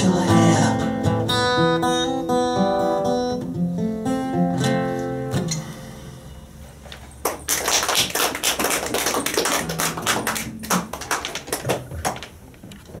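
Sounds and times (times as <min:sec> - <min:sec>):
audience clapping: 0:07.2 - 0:12.4.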